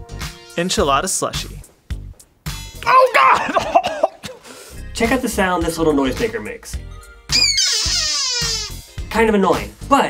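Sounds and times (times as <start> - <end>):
noisemaker squeal sliding down: 7.3 - 8.8.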